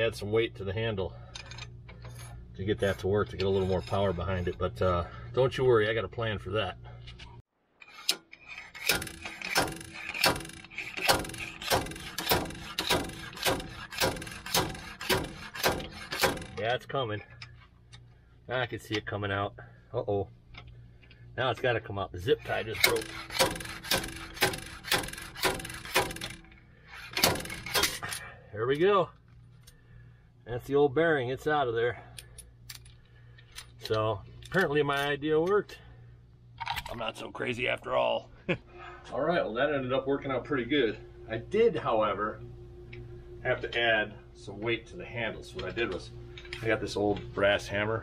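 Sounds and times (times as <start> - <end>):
slide hammer metal clanks: 7.9 - 17.5, 22.6 - 28.2.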